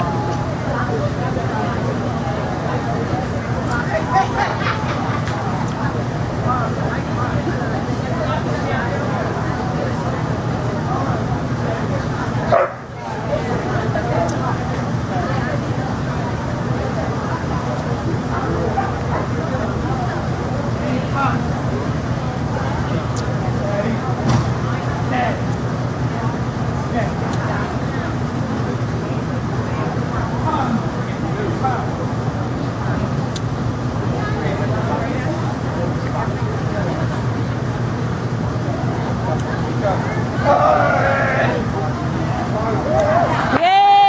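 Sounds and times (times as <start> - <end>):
background chatter: 0.0 - 44.0
hall hum: 0.0 - 44.0
indistinct voices: 0.0 - 44.0
dog barking loudly: 12.5 - 12.8.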